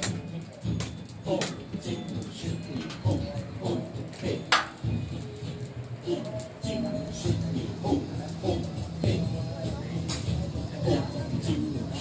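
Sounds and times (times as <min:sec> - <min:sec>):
music playing: 0:00.0 - 0:12.0.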